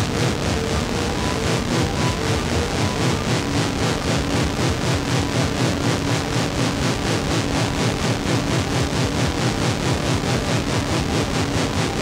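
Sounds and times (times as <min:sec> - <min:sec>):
noisy pulsing electronic music: 0:00.0 - 0:12.0.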